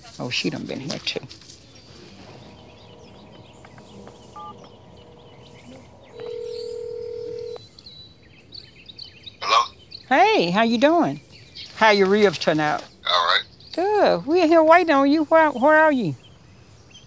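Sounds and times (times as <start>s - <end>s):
birds chirping faintly: 0.0s - 17.0s
phone keypad tone: 3.6s - 4.7s, 6.1s - 7.6s
phone ringback tone: 4.0s - 4.7s, 6.1s - 7.6s
person speaking on phone: 9.4s - 11.1s, 11.7s - 16.1s.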